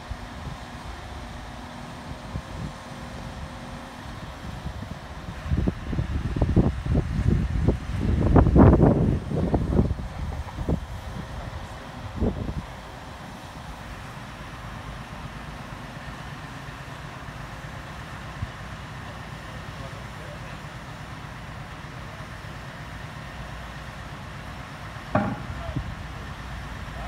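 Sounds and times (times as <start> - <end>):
diesel truck engine running: 0.0 - 27.0
short knock: 25.2 - 25.9.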